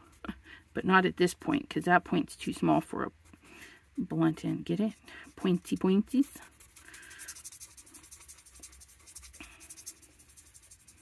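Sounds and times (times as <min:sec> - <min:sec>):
marker rubbing on cardstock: 0:05.3 - 0:11.0.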